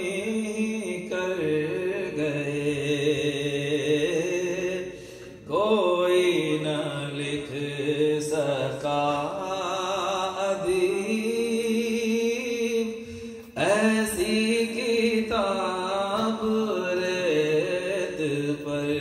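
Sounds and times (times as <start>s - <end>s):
man singing into a microphone: 0.0s - 19.0s.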